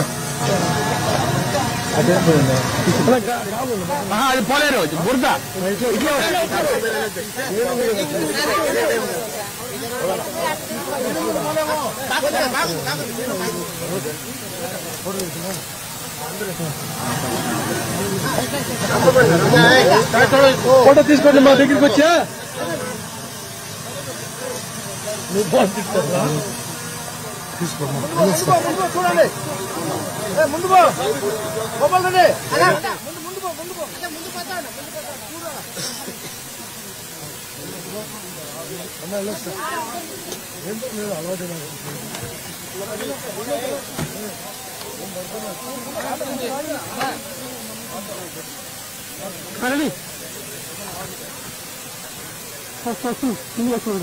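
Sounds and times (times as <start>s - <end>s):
people talking over one another: 0.0s - 54.0s
steady hiss: 0.0s - 54.0s.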